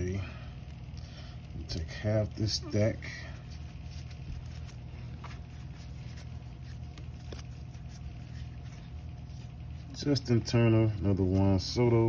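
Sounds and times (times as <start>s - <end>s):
steady low hum: 0.0s - 12.0s
trading cards rustling: 2.4s - 11.8s.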